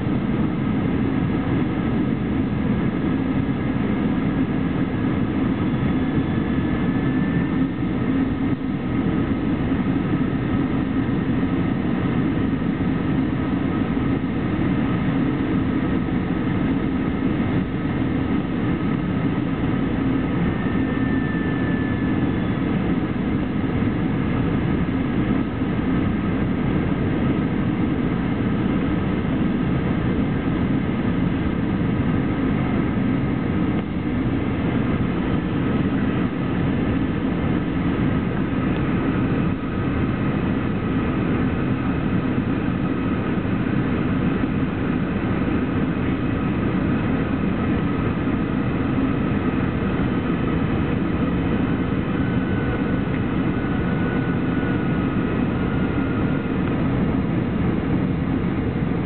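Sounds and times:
jet engine drone in cabin: 0.0 - 59.0.

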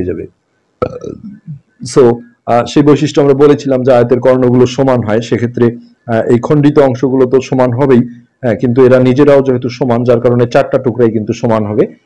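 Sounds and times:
man speaking: 0.0 - 12.0.

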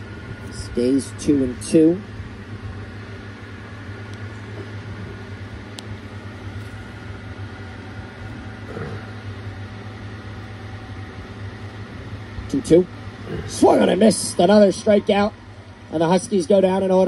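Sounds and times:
mechanical hum and hiss: 0.0 - 17.0.

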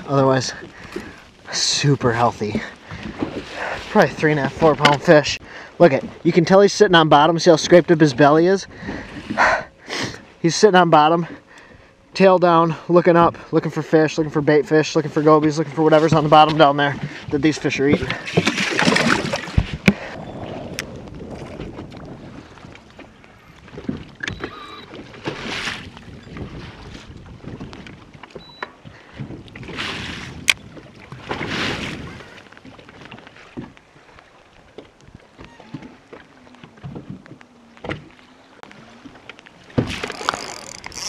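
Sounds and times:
waves lapping against boat hull: 0.0 - 41.0
wind gusts on microphone: 16.9 - 28.2, 29.1 - 32.4.

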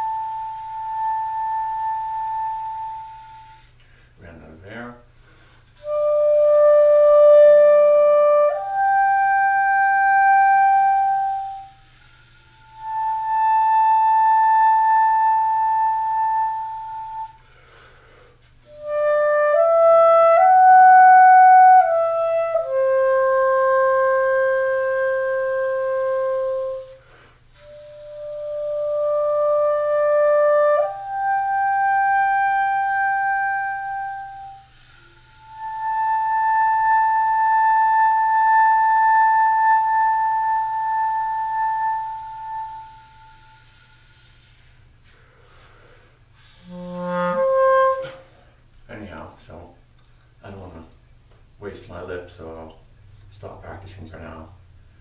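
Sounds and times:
clarinet solo: 0.0 - 3.8, 5.8 - 17.5, 18.5 - 49.2.

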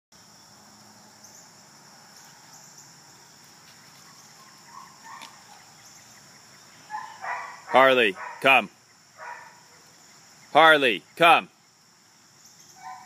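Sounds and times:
high-pitched insect chorus: 0.2 - 13.0.

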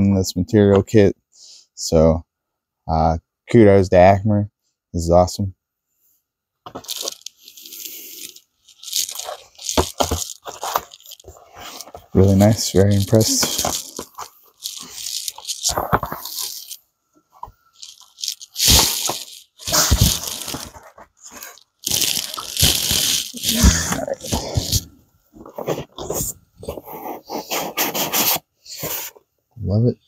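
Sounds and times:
cardboard and foam rustling: 6.7 - 16.8, 17.4 - 29.2.

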